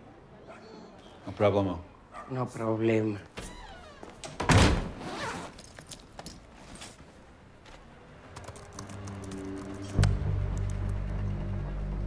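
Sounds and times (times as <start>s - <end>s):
wooden door slamming: 3.4s - 5.0s
laptop keyboard clicks: 8.3s - 11.0s.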